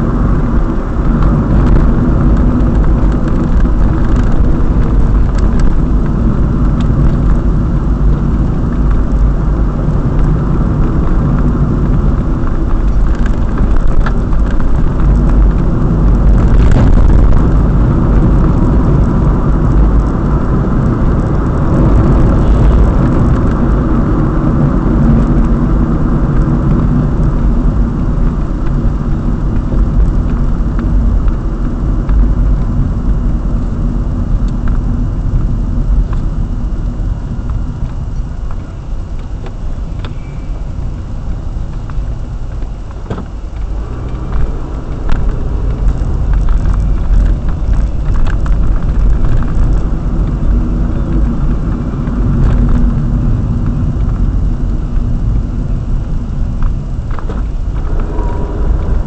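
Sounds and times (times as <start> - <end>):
car engine and tyre road noise: 0.0 - 59.0.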